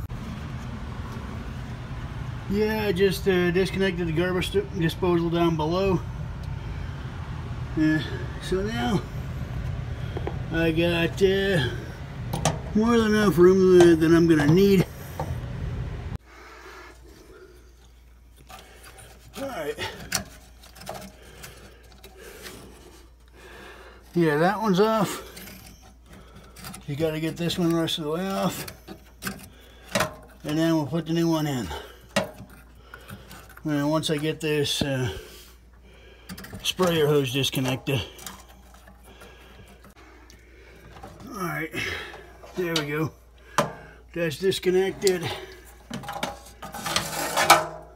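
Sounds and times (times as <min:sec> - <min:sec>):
low steady hum: 0:00.0 - 0:47.9
plastic scraping on rusted threads: 0:17.8 - 0:40.0, 0:44.6 - 0:47.9.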